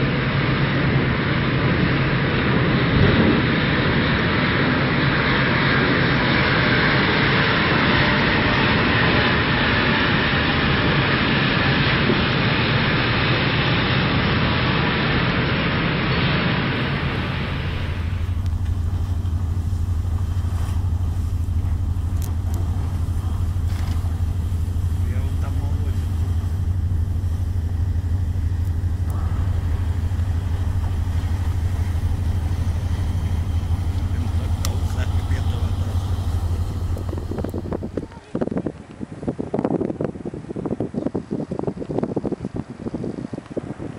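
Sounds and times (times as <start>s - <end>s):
loud steady rushing noise: 0.0s - 39.1s
low mechanical hum: 16.4s - 39.6s
faint ticks: 22.1s - 23.0s.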